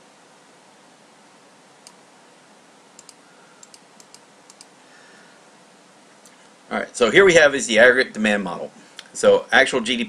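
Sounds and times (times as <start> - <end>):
steady low hiss: 0.0 - 10.0
computer clicks: 1.8 - 2.0, 3.0 - 4.7.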